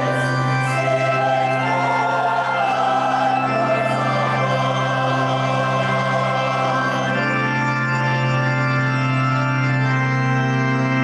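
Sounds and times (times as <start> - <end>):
church choir singing: 0.0 - 11.0
organ chord with bass note: 0.0 - 11.0.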